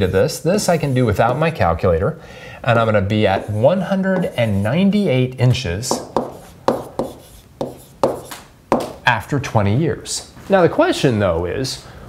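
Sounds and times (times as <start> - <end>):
stylus tapping on tablet screen: 5.9 - 9.0.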